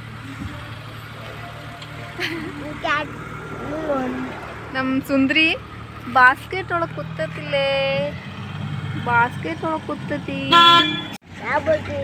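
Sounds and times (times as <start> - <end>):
vehicle engine hum: 0.0 - 12.0.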